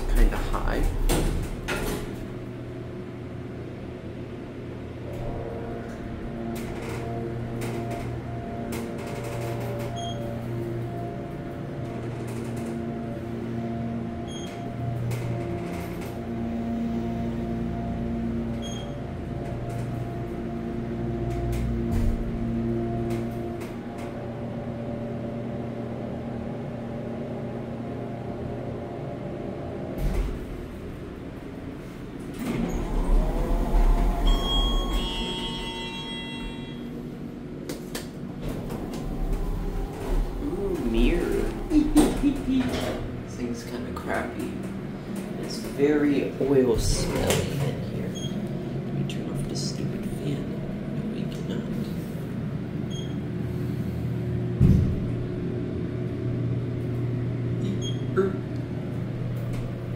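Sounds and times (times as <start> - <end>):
elevator stopping knock: 0.0 - 3.1, 5.0 - 51.1, 54.2 - 59.9
elevator pump motor humming: 0.0 - 59.9
low rumble of doors opening: 0.0 - 59.9
short high tones: 34.1 - 36.9.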